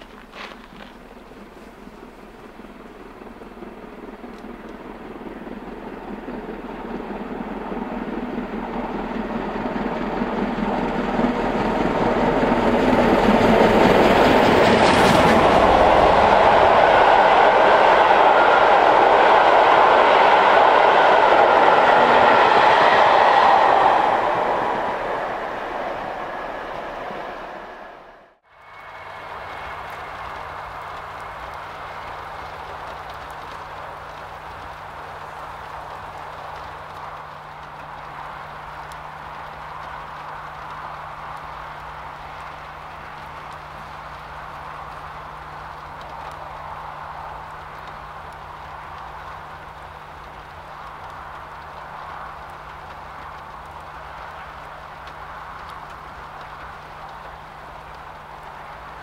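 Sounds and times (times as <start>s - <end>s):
steam locomotive passing with coaches: 0.0s - 59.0s.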